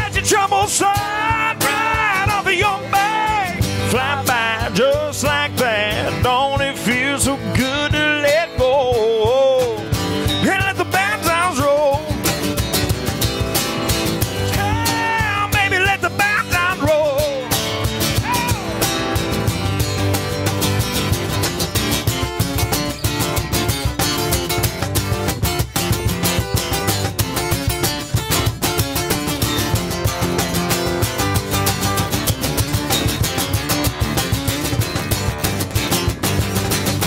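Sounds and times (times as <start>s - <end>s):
person singing: 0.0s - 9.8s, 10.4s - 12.2s, 14.5s - 18.9s
acoustic guitars strumming: 0.0s - 37.0s
cajon beat: 0.0s - 37.0s.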